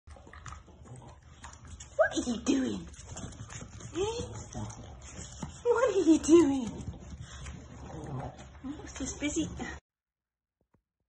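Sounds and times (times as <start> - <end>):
dog chewing: 0.1 - 9.8.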